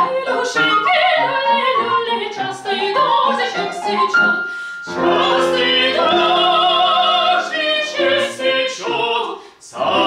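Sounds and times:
woman singing classically: 0.0s - 4.4s, 5.0s - 10.0s
grand piano accompaniment: 3.6s - 8.7s.

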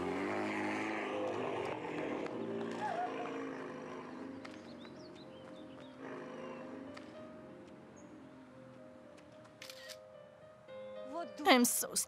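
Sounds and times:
soft background music: 3.4s - 12.0s
camera shutter burst: 9.6s - 10.0s.

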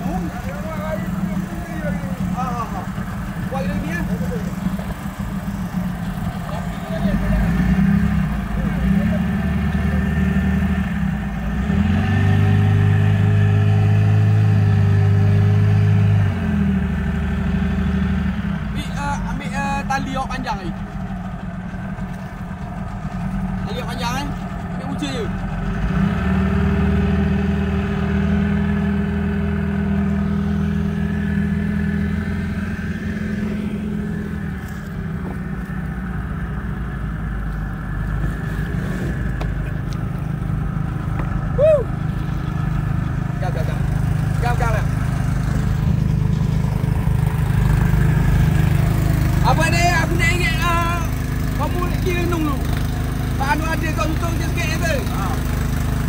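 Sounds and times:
voices calling out: 0.0s - 12.4s, 32.2s - 56.0s
boat engine running: 0.0s - 56.0s.

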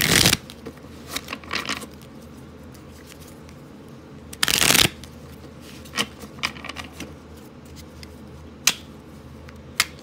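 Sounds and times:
cards shuffling: 0.0s - 2.1s, 4.4s - 7.1s.

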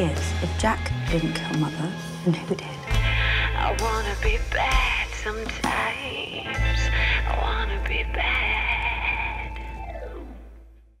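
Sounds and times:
eerie high tone: 6.1s - 10.5s.

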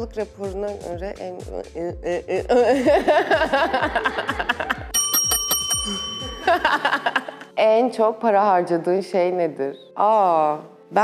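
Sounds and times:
background music with steady beat: 0.0s - 11.0s
bell-like ding: 4.9s - 6.8s.

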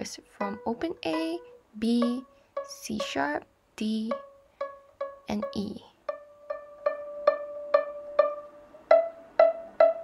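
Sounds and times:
violin string plucked pizzicato: 0.0s - 10.0s.

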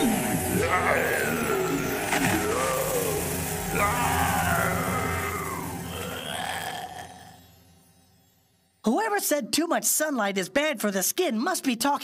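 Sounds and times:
cartoon battle music: 0.0s - 6.8s
energy beam sound effects: 0.0s - 6.8s
monster wailing cries: 0.0s - 7.4s.

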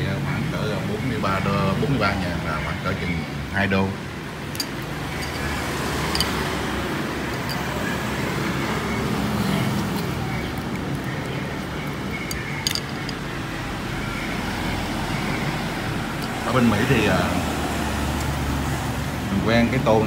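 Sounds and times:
street traffic hum: 0.0s - 20.0s.

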